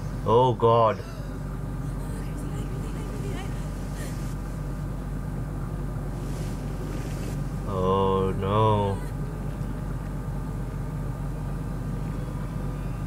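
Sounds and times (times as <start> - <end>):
faint steady hum: 0.0 - 13.0
low rumbling noise: 0.0 - 13.0.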